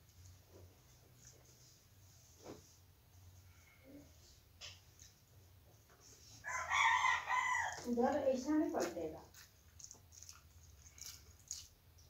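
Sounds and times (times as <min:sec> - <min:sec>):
rooster crowing: 0:06.4 - 0:07.9.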